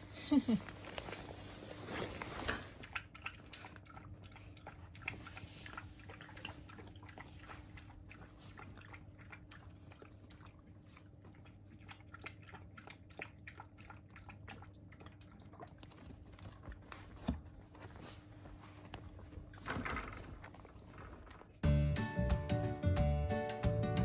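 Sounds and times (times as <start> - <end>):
puppy chewing and biting: 2.3 - 21.6.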